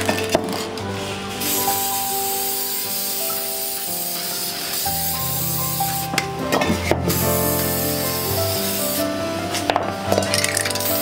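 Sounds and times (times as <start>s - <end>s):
aerosol spray can hissing: 1.3s - 6.3s, 6.9s - 9.2s, 10.4s - 11.0s.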